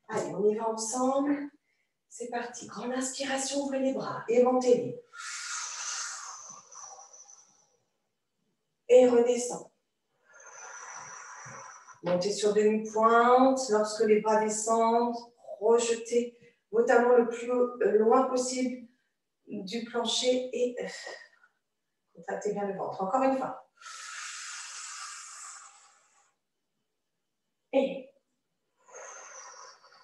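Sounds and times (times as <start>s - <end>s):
long exhale with thin whistle: 5.1s - 7.7s, 10.3s - 12.0s, 23.8s - 26.4s, 28.8s - 30.0s
woman breathing deeply: 10.2s - 12.0s, 23.8s - 26.4s, 28.8s - 30.0s.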